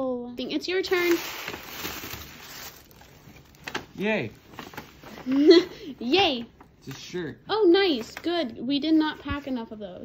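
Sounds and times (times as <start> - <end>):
tissue paper rustling and crinkling: 0.7 - 5.7.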